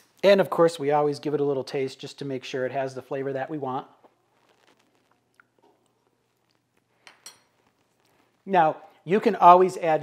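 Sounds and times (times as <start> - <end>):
mouth and lip sounds tasting: 5.0 - 6.9.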